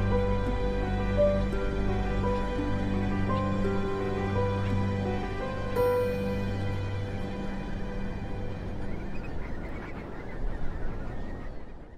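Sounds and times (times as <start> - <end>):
flock of birds whistling: 8.6 - 11.9.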